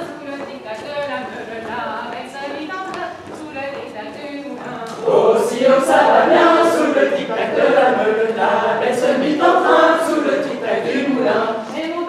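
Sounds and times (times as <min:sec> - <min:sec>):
group singing unaccompanied: 0:04.5 - 0:12.0.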